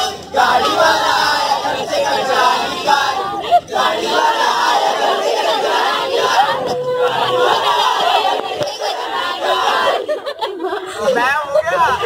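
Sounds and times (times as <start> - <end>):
children and adults cheering: 4.1 - 10.1.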